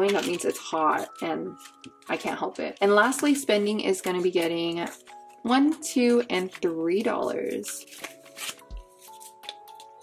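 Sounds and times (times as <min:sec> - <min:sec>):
paper bills rustling: 0:00.0 - 0:10.0
soft background music: 0:00.0 - 0:10.0.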